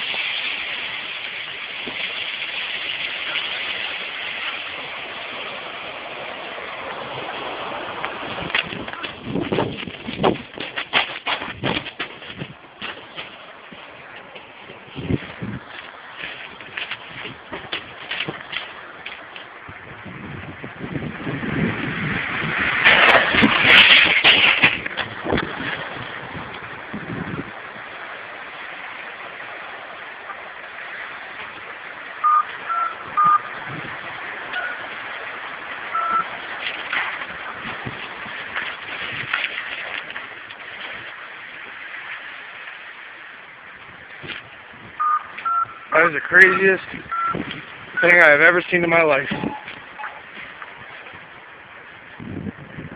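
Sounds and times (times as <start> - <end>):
landslide rushing rumble: 0.0 - 52.9
short electronic beeps: 32.2 - 33.5, 35.9 - 36.3, 45.0 - 47.4, 48.0 - 48.2.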